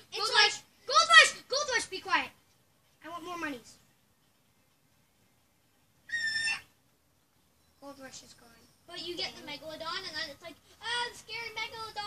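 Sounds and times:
parrot high-pitched call: 6.1s - 6.7s.

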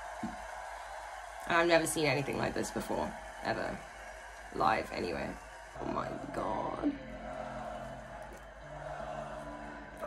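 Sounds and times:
festival crowd: 0.0s - 1.7s, 5.8s - 10.0s.

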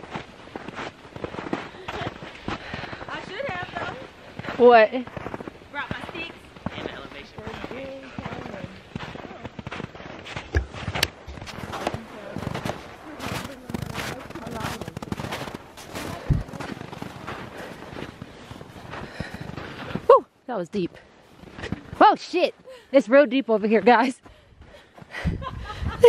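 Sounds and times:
footsteps crunching through snow: 0.0s - 20.2s, 21.0s - 22.7s.

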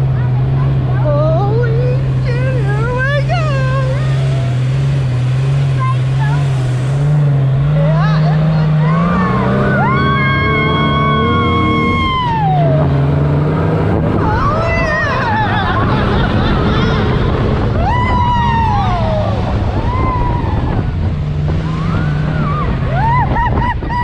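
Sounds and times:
dune buggy engine running: 0.0s - 24.0s
long held shout: 8.9s - 12.9s, 17.8s - 20.9s
riders' voices: 14.1s - 17.8s.

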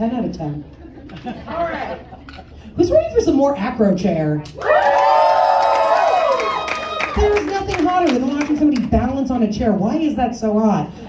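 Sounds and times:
audience cheering and whooping: 4.6s - 7.6s.

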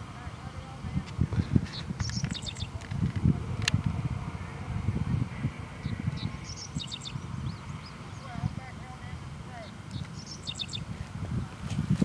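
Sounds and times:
low gusty rumble: 0.0s - 12.0s
birds chirping: 0.1s - 3.1s, 4.4s - 11.7s.

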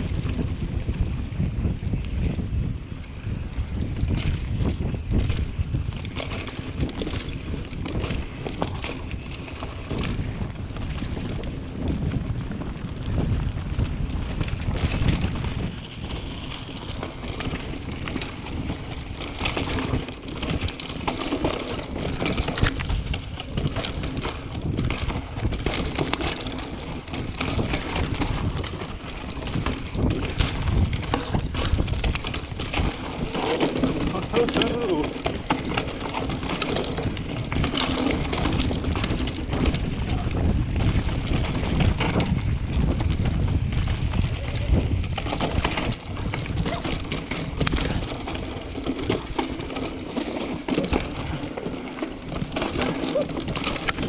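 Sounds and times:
bike rattling and knocking: 0.0s - 54.0s
wind buffeting microphone: 0.0s - 54.0s
tyres running over dirt: 3.2s - 54.0s.

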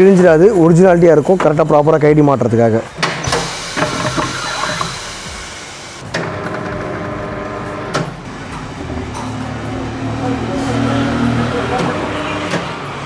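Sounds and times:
tyre changer motor running: 3.1s - 12.7s
air hiss: 3.3s - 6.0s.

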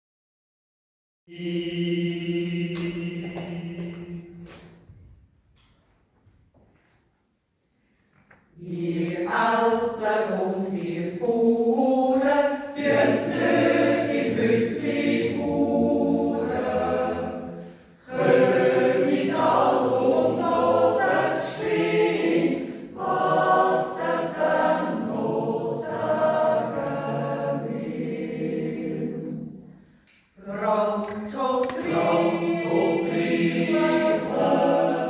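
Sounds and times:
choir yodeling a cappella: 1.3s - 4.7s, 8.6s - 35.0s.

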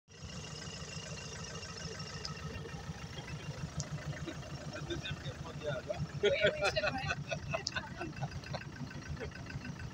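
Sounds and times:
engine running at low revs: 0.1s - 9.9s
voices nearby: 2.6s - 9.9s.

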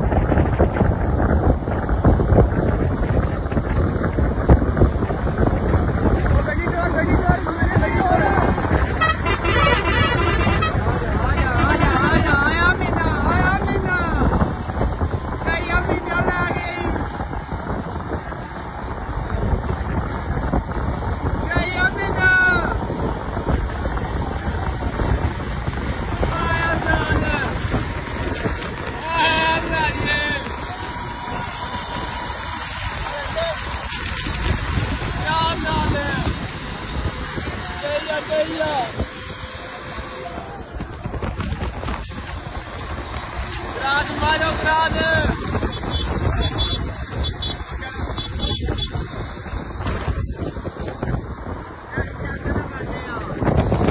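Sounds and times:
bus engine rumble: 0.0s - 53.9s
riders' voices: 0.0s - 53.9s
road traffic: 0.0s - 53.9s
wind on microphone: 0.0s - 53.9s
warbling horn: 8.4s - 12.3s
men shouting: 26.0s - 34.0s.

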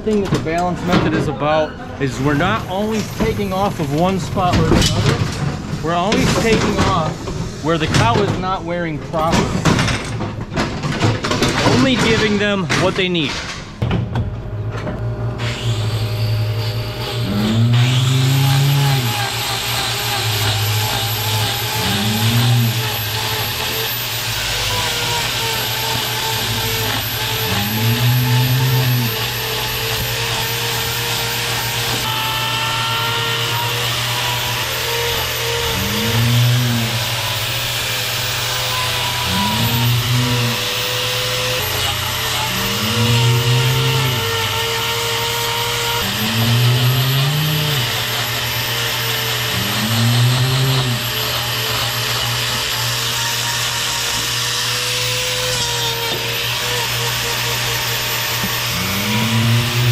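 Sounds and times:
angle grinder trimming hoof: 0.0s - 13.8s, 14.9s - 59.9s
cow bellowing: 17.2s - 19.2s, 21.8s - 22.9s, 27.4s - 29.2s, 35.6s - 37.3s, 39.2s - 40.7s, 42.4s - 44.3s, 46.0s - 48.0s, 49.5s - 51.1s, 58.7s - 59.9s.

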